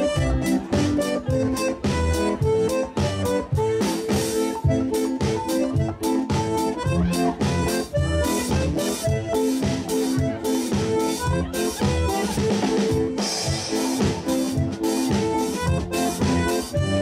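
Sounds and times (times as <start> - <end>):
button accordion melody: 0.0 - 17.0
drum kit: 0.0 - 17.0.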